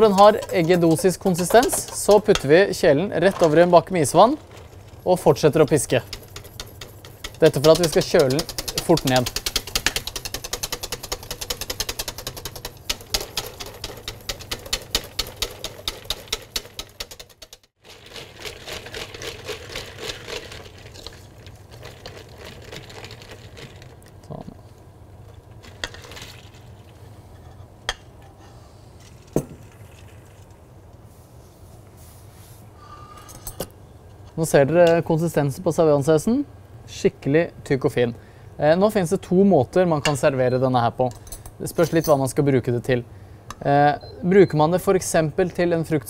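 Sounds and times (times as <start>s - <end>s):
whisk clattering in steel bowl: 0.0s - 4.5s, 5.1s - 17.7s.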